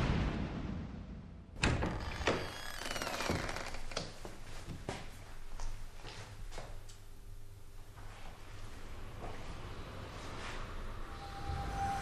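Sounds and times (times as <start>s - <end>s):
thin falling squeak: 1.9s - 3.9s.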